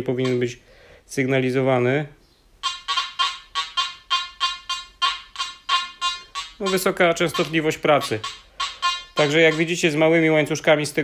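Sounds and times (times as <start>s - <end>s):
metal detector beeping: 0.0s - 0.6s, 2.6s - 10.0s.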